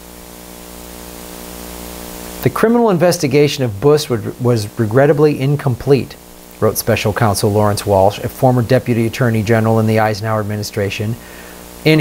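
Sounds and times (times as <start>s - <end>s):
low electrical hum: 0.0s - 12.0s
steady hiss: 0.0s - 12.0s.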